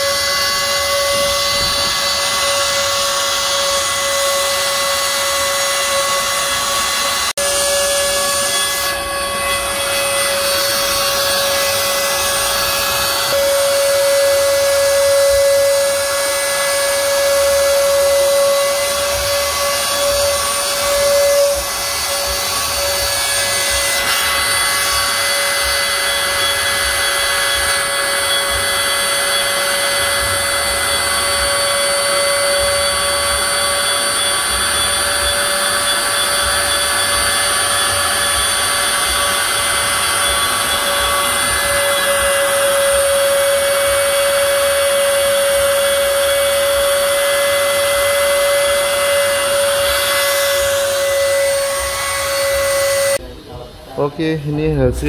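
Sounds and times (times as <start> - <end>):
hiss of bit cutting wood: 0.0 - 53.2
router spindle whining: 0.0 - 53.2.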